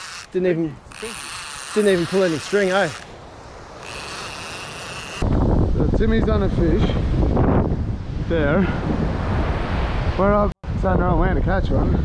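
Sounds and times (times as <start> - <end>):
beach surf: 0.4 - 10.8
wind buffeting microphone: 5.0 - 12.0.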